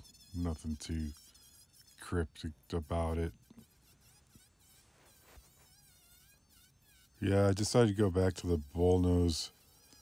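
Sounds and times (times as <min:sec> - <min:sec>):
rotary carving tool whine: 0:00.0 - 0:10.0.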